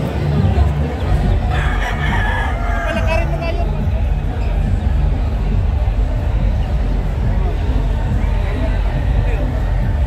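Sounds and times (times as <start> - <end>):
rooster crowing: 1.5 - 3.3.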